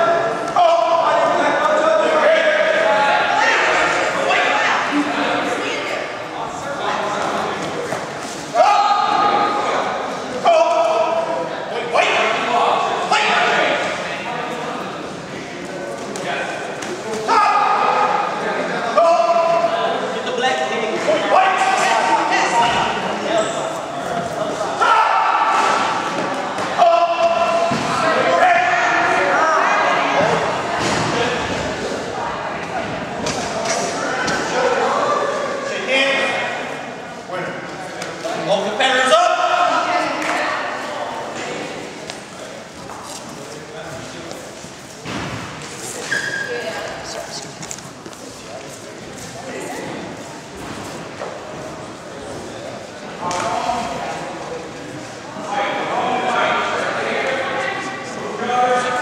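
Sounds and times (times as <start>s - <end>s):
voices shouting and calling out: 0.0s - 44.4s.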